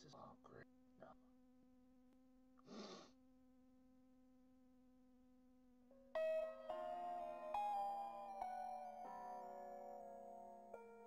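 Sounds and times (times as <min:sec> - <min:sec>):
keyboard music held notes: 0:06.1 - 0:11.0.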